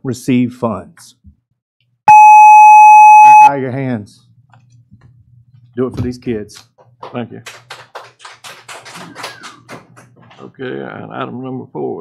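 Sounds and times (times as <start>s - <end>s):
people clapping: 7.0s - 10.4s.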